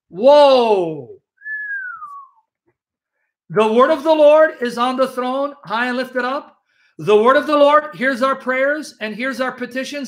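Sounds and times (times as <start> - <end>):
man whistling downward: 1.4 - 2.5.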